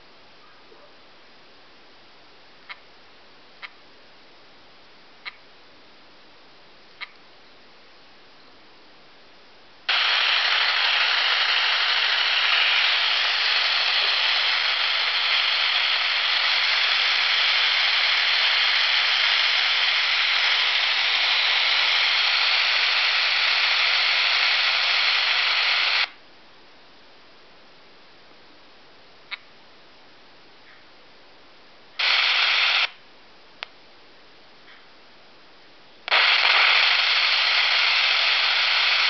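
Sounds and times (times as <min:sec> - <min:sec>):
tv static hiss: 0:00.0 - 0:26.2, 0:31.0 - 0:39.0.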